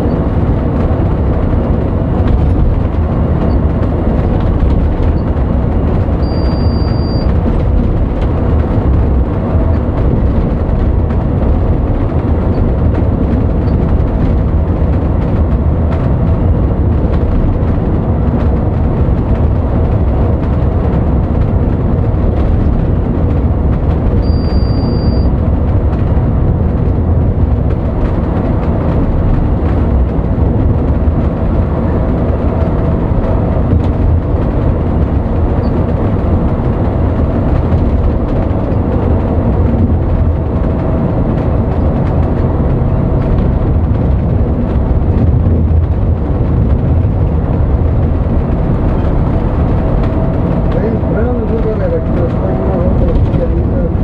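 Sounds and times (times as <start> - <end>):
bus engine and road rumble: 0.0 - 54.0
short high beep: 6.2 - 7.3, 24.2 - 25.3.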